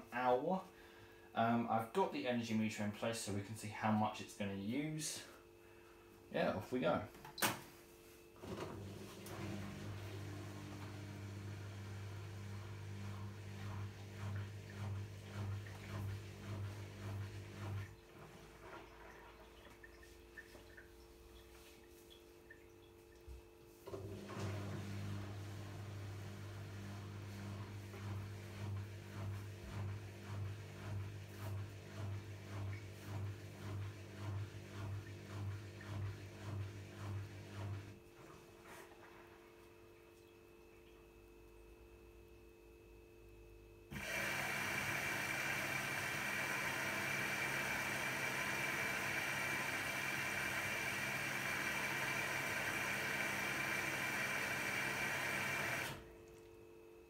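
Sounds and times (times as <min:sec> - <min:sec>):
washing machine filling with water: 0:08.4 - 0:41.2, 0:43.9 - 0:56.2.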